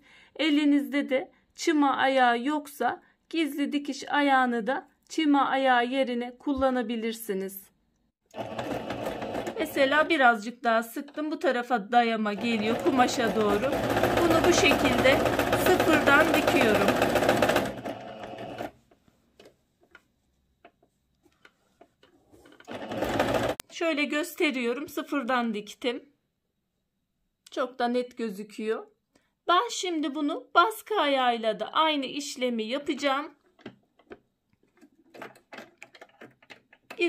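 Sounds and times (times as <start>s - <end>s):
sewing machine stitching: 8.3s - 10.2s, 12.3s - 18.8s, 22.4s - 23.6s.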